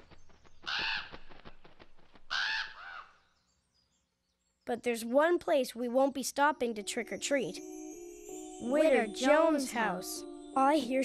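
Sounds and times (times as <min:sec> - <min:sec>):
crow cawing: 0:00.6 - 0:01.2, 0:02.3 - 0:03.2.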